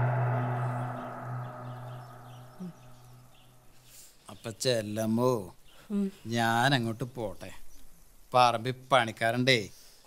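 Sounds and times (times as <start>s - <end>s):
low gong-like tone: 0.0s - 3.4s.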